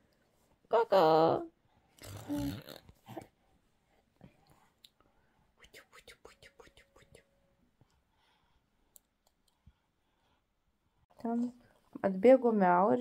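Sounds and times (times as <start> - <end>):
soft mouth clicks: 5.6 - 7.3
faint whispering: 5.6 - 7.4.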